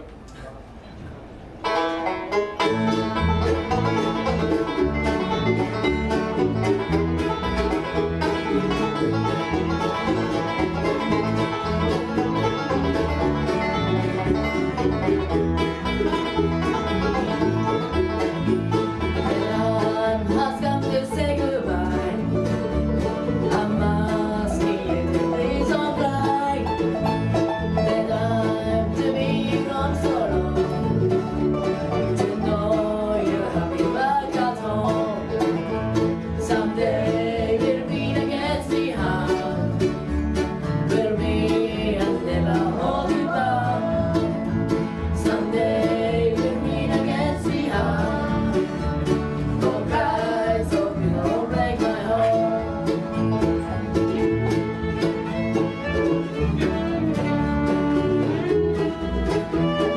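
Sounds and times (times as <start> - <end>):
bluegrass band playing: 1.1 - 59.9.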